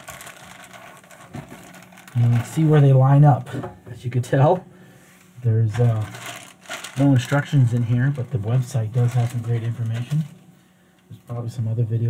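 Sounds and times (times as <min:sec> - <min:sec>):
plastic bag crinkling: 0:00.0 - 0:03.2, 0:05.7 - 0:10.5.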